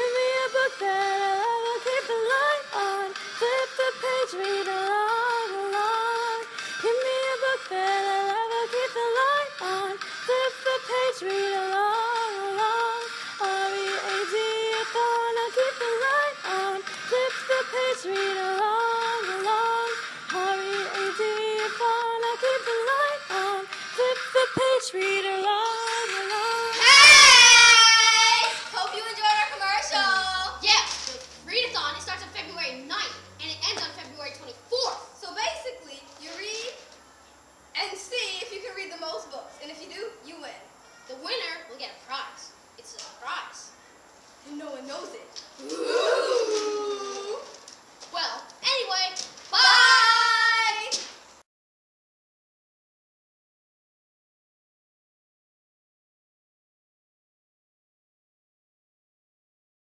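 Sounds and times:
pop backing track: 0.0s - 30.2s.

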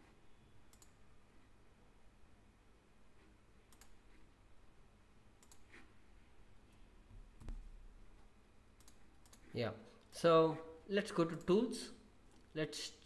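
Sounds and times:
computer mouse clicks: 0.7s - 1.0s, 3.7s - 4.2s, 5.4s - 5.9s, 8.7s - 9.5s, 11.3s - 11.6s.

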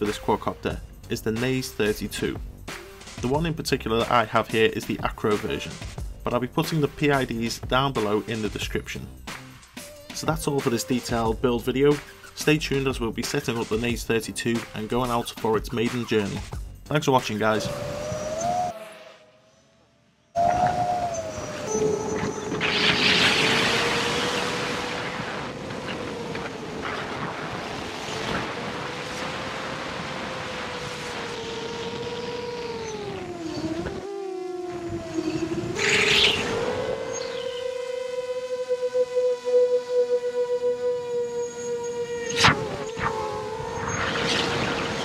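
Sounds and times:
drone motors whining: 17.4s - 45.0s
wind noise on microphone: 17.5s - 18.8s, 20.4s - 45.0s.

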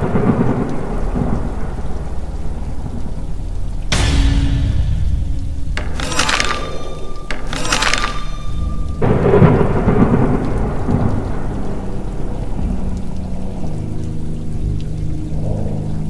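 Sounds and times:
thunder crack rumbling: 0.0s - 13.6s
rain: 0.0s - 16.0s.

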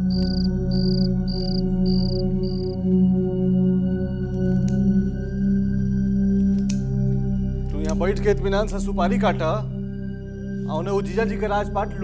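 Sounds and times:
crickets chirping: 0.0s - 3.0s
low music drone: 0.0s - 12.0s.

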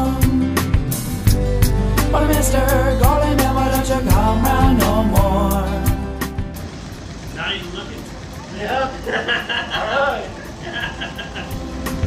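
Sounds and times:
man laughing in short bursts: 9.0s - 11.6s.

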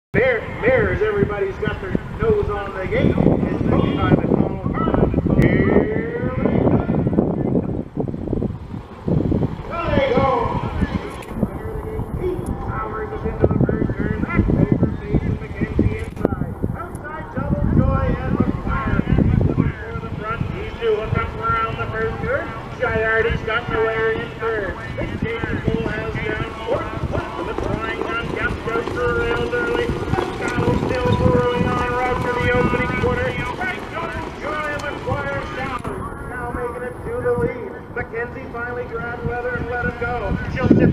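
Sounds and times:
wind noise on microphone: 0.2s - 40.9s
voices calling out long notes: 20.0s - 39.0s
truck engine accelerating: 20.2s - 39.2s.

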